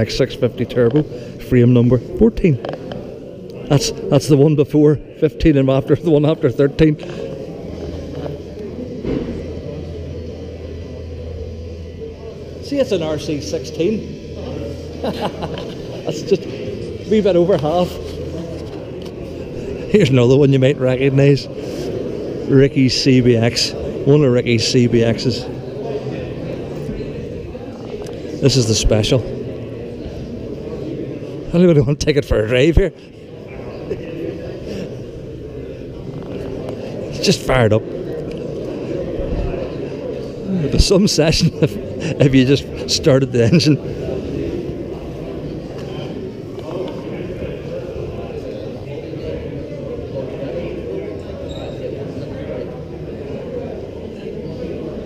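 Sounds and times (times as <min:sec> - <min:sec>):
indistinct chatter in a hall: 0:00.0 - 0:55.0
man speaking: 0:28.4 - 0:29.3, 0:40.5 - 0:43.8.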